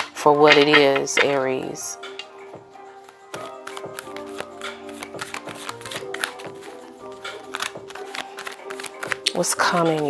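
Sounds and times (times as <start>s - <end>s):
soft background music: 0.0s - 10.0s
cards being shuffled: 3.0s - 10.0s.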